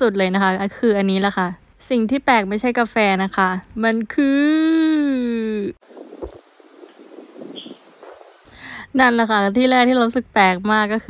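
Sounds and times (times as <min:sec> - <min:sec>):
wind on microphone: 0:05.8 - 0:08.5.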